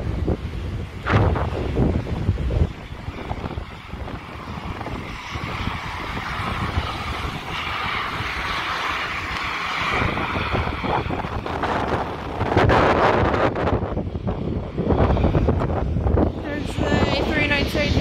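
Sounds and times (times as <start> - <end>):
turboprop plane taking off: 0.0 - 18.0
wind buffeting microphone: 0.0 - 18.0.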